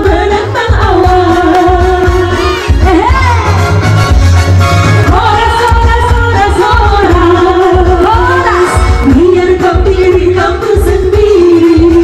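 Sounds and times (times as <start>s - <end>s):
woman singing: 0.0s - 3.7s, 5.0s - 12.0s
backing track with bass beat: 0.0s - 12.0s.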